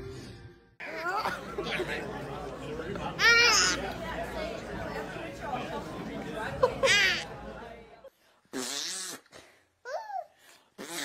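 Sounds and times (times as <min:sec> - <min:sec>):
person blowing a raspberry: 0:08.5 - 0:09.3, 0:10.7 - 0:11.0.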